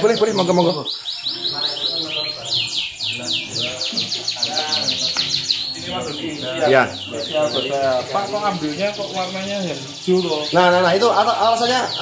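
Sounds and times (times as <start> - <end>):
canaries singing: 0.0 - 12.0.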